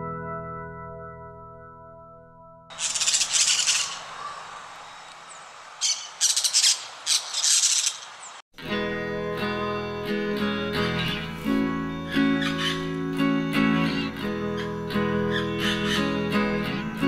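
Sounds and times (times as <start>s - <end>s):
parakeet chirps and squawks: 2.7s - 5.0s, 5.8s - 8.2s, 12.4s - 12.9s, 14.0s - 16.1s
acoustic guitar music: 8.6s - 17.0s.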